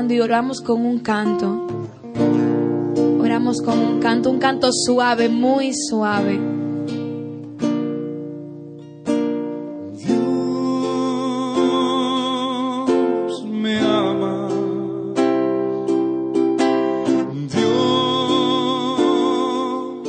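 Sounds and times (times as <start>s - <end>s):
person singing: 0.0s - 2.0s, 2.8s - 6.5s, 9.8s - 20.0s
strummed acoustic guitar: 0.0s - 20.0s.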